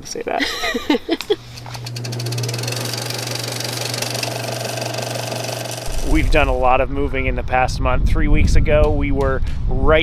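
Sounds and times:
low mechanical hum: 0.4 - 7.7.

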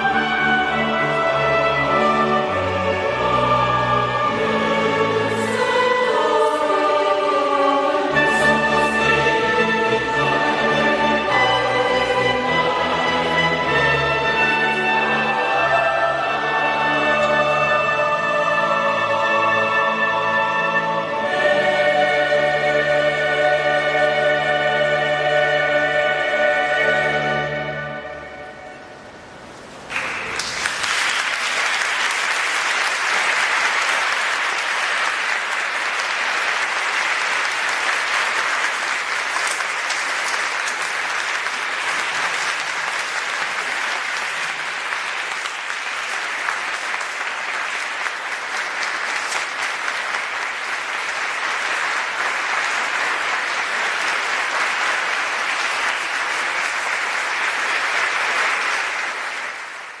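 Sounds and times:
audience applauding: 29.9 - 60.0.

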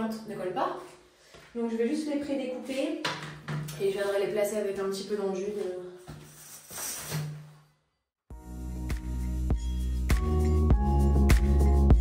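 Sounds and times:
rustling and handling noise: 5.6 - 7.5.

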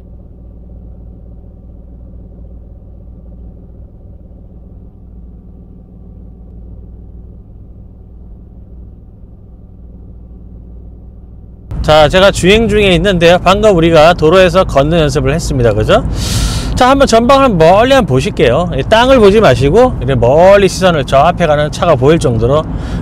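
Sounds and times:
car engine idling: 0.0 - 23.0.

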